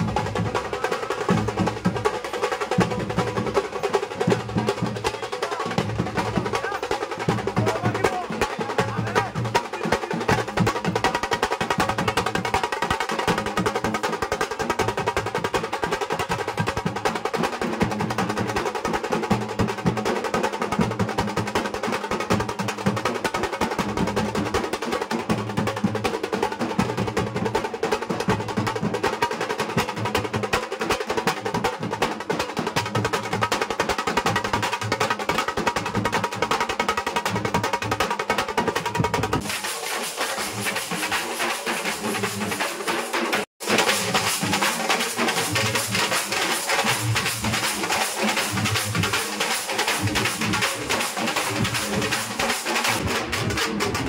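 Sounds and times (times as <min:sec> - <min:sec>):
barrel drums beaten with sticks: 0:00.0 - 0:54.0.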